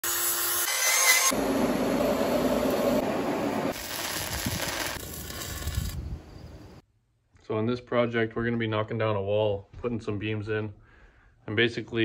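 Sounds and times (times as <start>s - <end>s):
angle grinder grinding steel: 0.0s - 3.0s.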